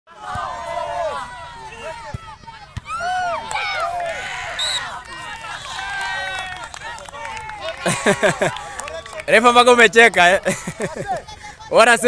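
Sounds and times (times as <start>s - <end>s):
children shouting: 0.1s - 6.5s.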